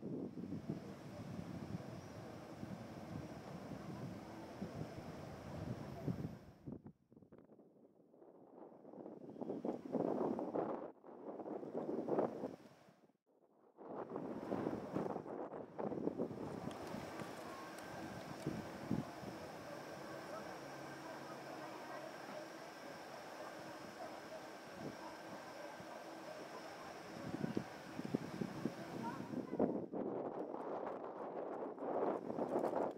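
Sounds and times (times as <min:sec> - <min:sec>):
wind buffeting microphone: 0:00.0 - 0:07.5, 0:13.8 - 0:32.9.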